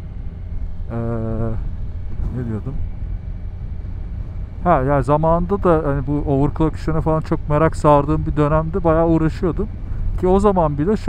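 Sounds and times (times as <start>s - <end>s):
motorcycle engine low rumble: 0.0s - 11.0s.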